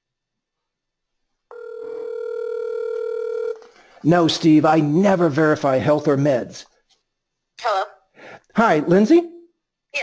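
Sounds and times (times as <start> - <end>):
telephone ringback tone: 1.5 - 3.7.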